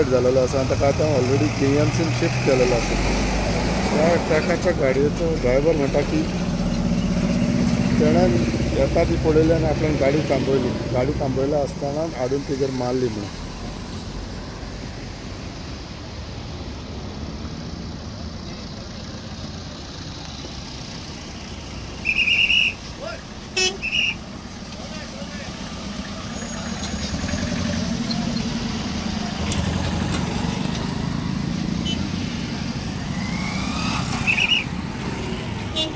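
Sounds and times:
road traffic: 0.0s - 35.9s
car horns honking: 22.0s - 24.2s, 31.8s - 32.2s, 35.3s - 35.9s.

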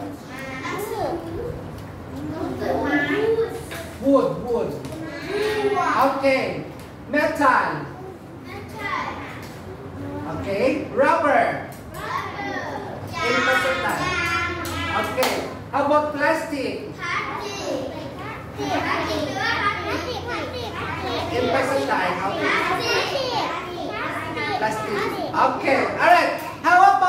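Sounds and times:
children calling out together: 17.0s - 25.4s.

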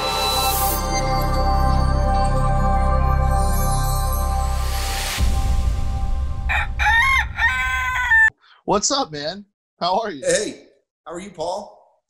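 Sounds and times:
rooster crowing: 6.5s - 8.4s.

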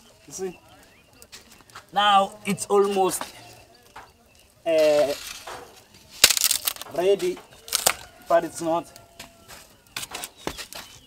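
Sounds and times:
twigs crunching: 0.0s - 11.0s
wood cracking: 0.0s - 11.0s.

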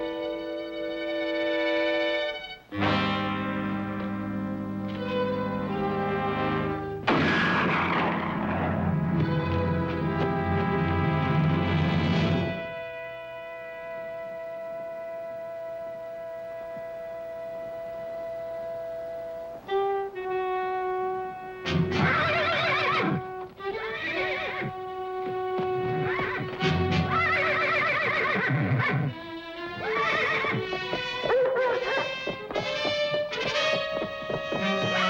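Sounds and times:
dramatic orchestral music: 2.8s - 12.9s
horse whinnying: 21.8s - 24.8s, 25.7s - 35.0s.

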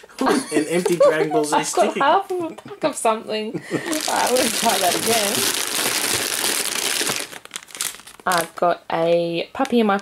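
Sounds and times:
foil packets and boxes crinkling: 3.8s - 8.7s.

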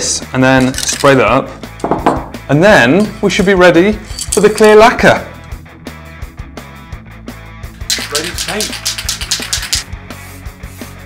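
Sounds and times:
background music with steady beat: 0.0s - 11.0s
aerosol spray can hissing: 7.8s - 9.9s.

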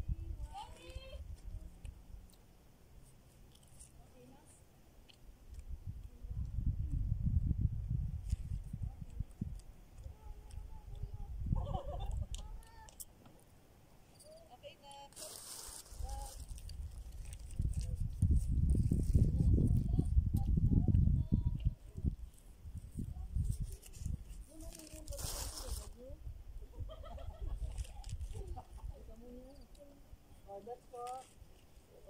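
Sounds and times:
wind buffeting microphone: 0.0s - 1.6s, 5.6s - 12.6s, 15.9s - 29.2s
rustle: 0.0s - 7.0s, 8.0s - 20.2s, 21.2s - 32.0s.

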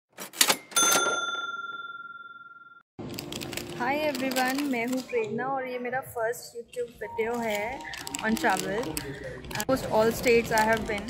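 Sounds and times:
cash register clatter: 0.1s - 1.7s
cash register bell ding: 0.2s - 2.8s.

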